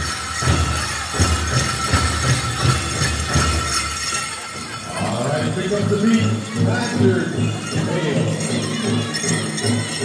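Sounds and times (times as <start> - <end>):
bells and metal cones jingling: 0.0 - 10.0
drum beating a steady pulse: 0.0 - 10.0.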